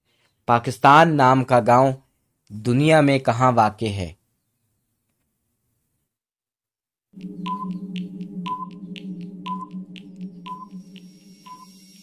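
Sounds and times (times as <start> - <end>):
low hum: 7.2 - 12.0
timer ticking: 7.2 - 12.0
short beeps: 7.4 - 12.0.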